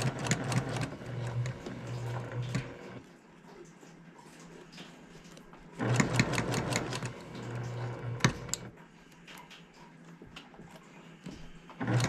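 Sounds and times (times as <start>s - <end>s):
sewing machine stitching: 0.0s - 3.0s, 5.8s - 8.7s, 11.8s - 12.0s.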